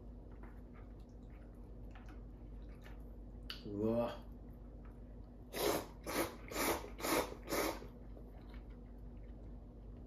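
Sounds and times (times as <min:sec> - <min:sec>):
noodles being slurped: 0:05.5 - 0:08.6.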